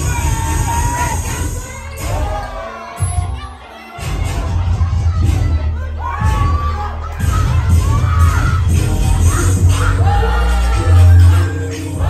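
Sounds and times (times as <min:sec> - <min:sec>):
bass-heavy dance music: 0:00.0 - 0:12.0
crowd of children shouting and cheering: 0:00.0 - 0:12.0.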